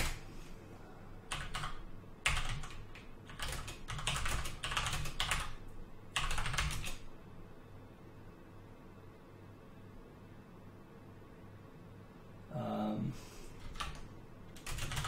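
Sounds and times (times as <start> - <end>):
typing on computer keyboard: 1.3 - 5.6, 6.2 - 7.1, 13.6 - 15.0.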